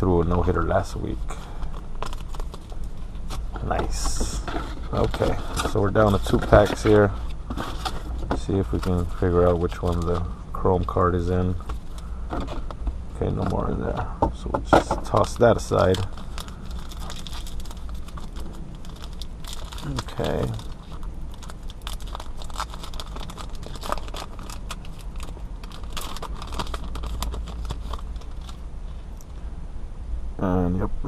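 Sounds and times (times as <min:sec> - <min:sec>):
wrapper being torn open: 0:15.0 - 0:28.6.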